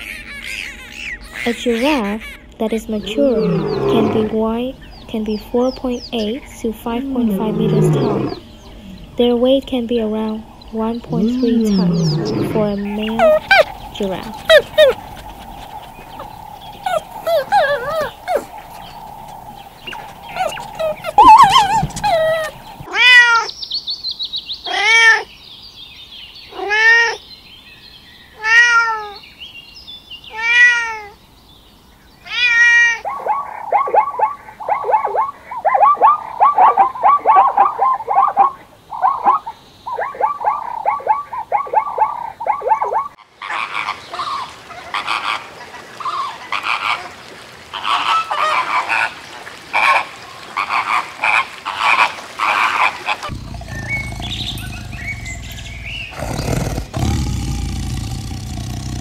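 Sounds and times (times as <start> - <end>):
flamingos chattering: 0.0 - 22.9, 42.8 - 59.0
zebras barking: 0.0 - 23.1, 33.0 - 43.8, 49.7 - 59.0
fox calling: 0.0 - 23.5, 32.3 - 44.4, 50.6 - 59.0.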